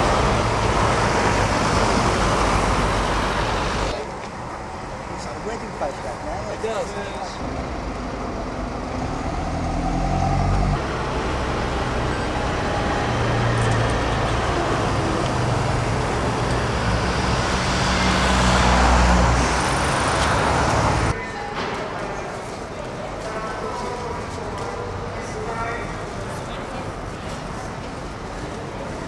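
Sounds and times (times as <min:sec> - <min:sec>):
bus engine driving past: 0:00.0 - 0:05.2, 0:07.2 - 0:21.2
traffic noise: 0:00.0 - 0:29.0.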